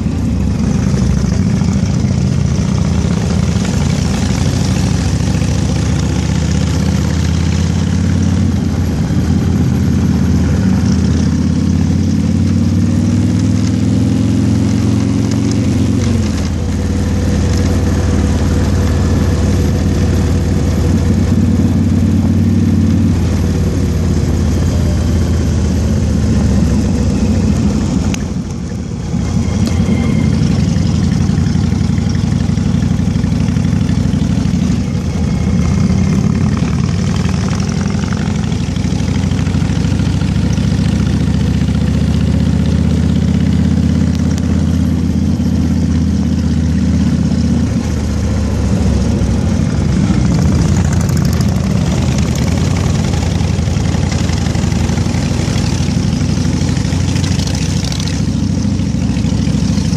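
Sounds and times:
car engine running: 0.0s - 59.9s
wind and road noise: 0.0s - 59.9s.

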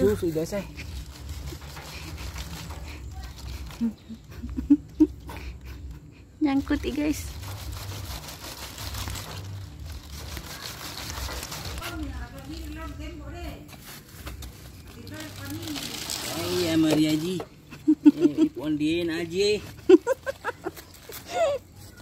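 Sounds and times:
pineapple leaves rustling: 0.0s - 4.3s, 6.6s - 22.0s.

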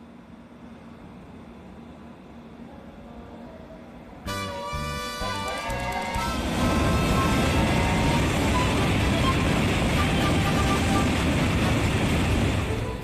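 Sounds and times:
train rushing past: 4.3s - 13.0s.

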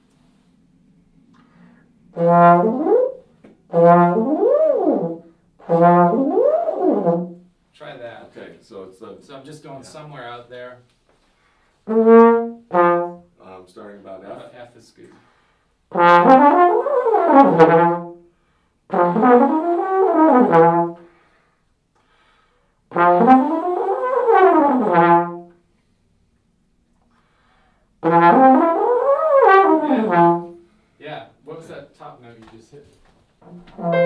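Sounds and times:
trombone upward rips: 33.4s - 34.0s.

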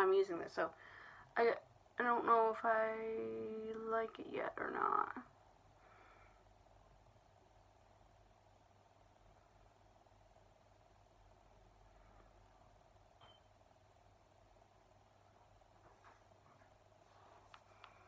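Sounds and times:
low steady hum: 0.0s - 18.0s
faint ticks: 17.5s - 18.0s.

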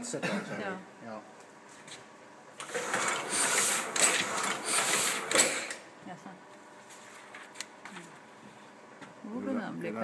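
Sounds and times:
printing press rhythmic clatter: 2.6s - 5.8s.

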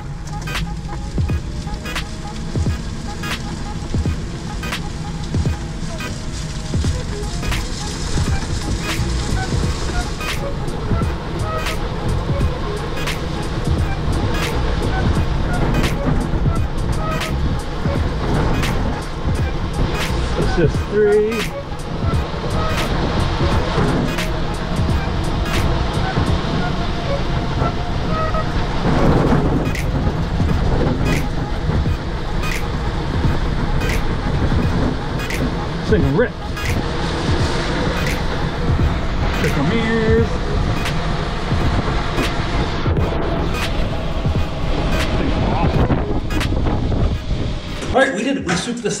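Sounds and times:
wind noise: 0.0s - 48.8s
background music with steady beat: 0.0s - 49.0s
trike road noise: 0.0s - 49.0s.

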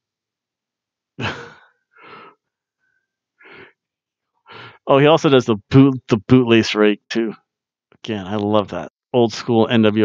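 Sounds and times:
man's breathy laugh: 1.2s - 2.3s.

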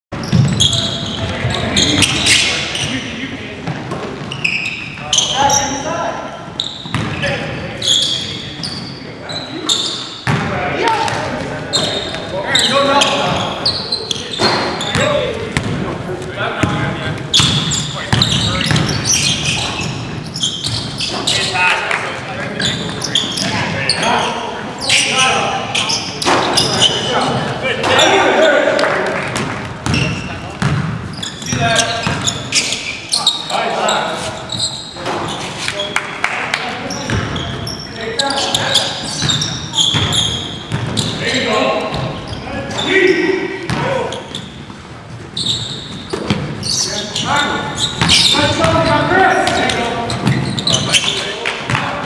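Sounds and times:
sneakers squeaking: 0.1s - 52.0s
basketball bouncing: 0.2s - 1.3s, 14.4s - 15.8s, 16.6s - 19.0s, 29.3s - 32.4s, 39.2s - 41.1s, 48.0s - 48.9s
players calling out: 0.2s - 44.7s, 45.4s - 52.0s.

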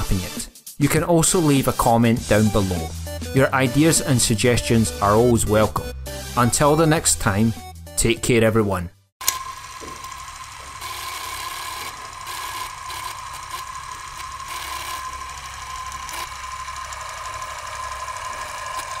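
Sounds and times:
film projector whirring rattle: 9.2s - 19.0s.

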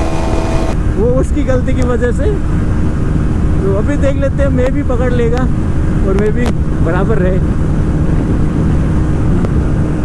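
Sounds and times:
motorcycle engine at speed: 0.0s - 10.0s
wind buffeting microphone: 0.0s - 10.0s.

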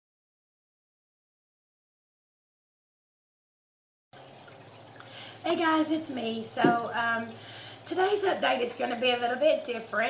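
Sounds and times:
faint hiss with low hum: 4.2s - 10.0s.

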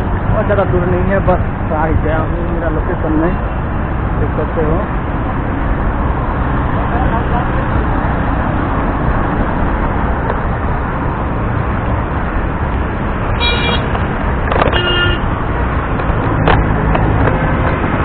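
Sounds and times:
city road traffic: 0.0s - 18.0s
vehicle horn honks: 13.3s - 13.9s, 14.7s - 15.3s.

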